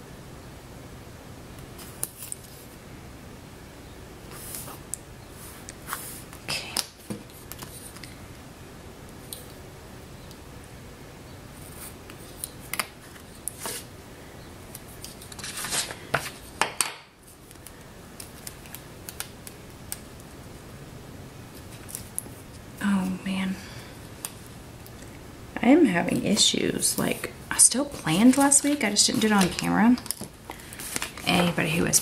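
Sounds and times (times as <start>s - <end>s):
paper rustling: 14.9s - 16.5s, 27.9s - 31.7s.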